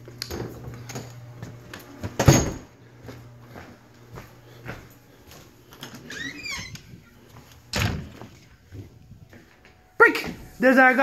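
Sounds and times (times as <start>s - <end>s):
footsteps: 3.0s - 11.0s
door squeak: 5.9s - 6.9s
loud door thud: 7.7s - 8.2s.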